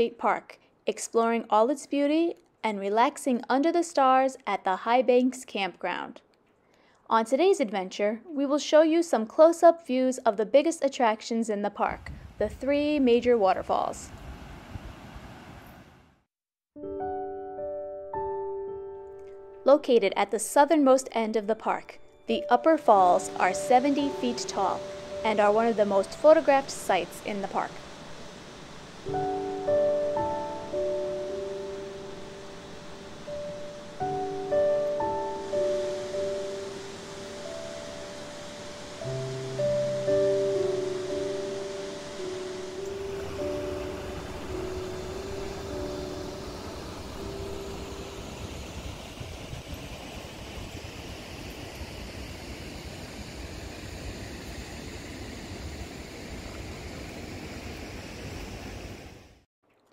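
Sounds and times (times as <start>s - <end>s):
gentle instrumental music: 16.8s - 49.2s
waterfall rushing: 22.9s - 59.1s.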